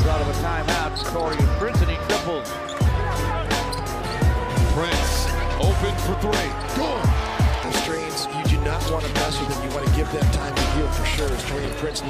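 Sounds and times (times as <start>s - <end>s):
basketball game broadcast: 0.0s - 12.0s
hip-hop backing track: 0.0s - 12.0s.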